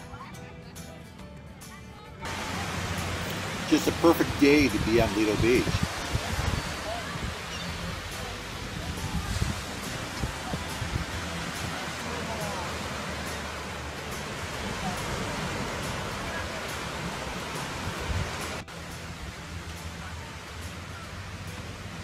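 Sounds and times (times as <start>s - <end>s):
faint voices: 0.0s - 22.0s
surf breaking: 2.3s - 18.7s
wind on microphone: 4.7s - 13.7s, 14.4s - 18.6s.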